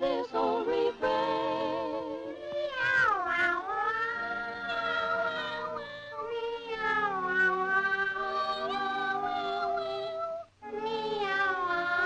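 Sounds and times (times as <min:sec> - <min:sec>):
music: 0:00.0 - 0:12.0
cartoon cat singing meow: 0:00.2 - 0:12.0.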